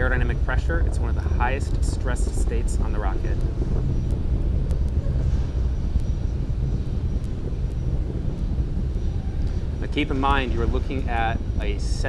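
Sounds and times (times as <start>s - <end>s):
faint ticks: 0.0s - 12.0s
rocket engines rumbling: 0.0s - 12.0s.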